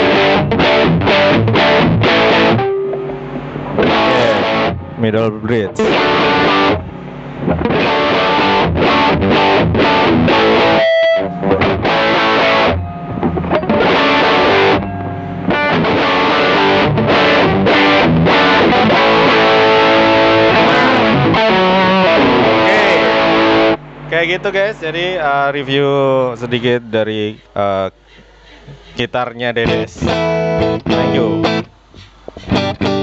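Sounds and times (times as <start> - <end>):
distorted electric guitar: 0.0 - 25.8, 29.6 - 33.0.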